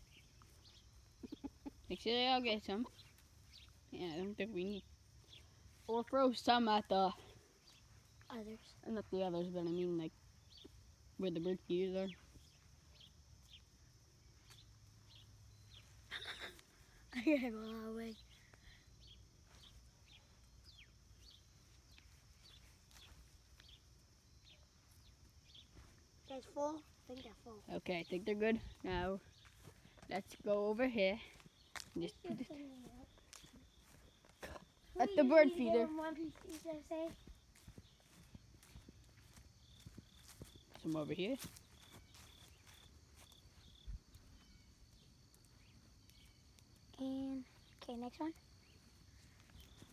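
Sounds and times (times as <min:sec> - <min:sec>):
footsteps on grass and dry leaves: 0:02.4 - 0:16.7, 0:19.2 - 0:49.9.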